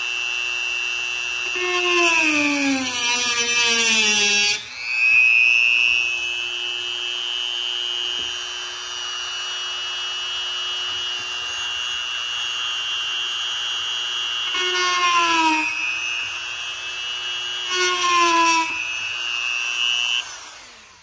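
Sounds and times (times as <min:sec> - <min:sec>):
rotary tool whining: 0:00.0 - 0:21.0.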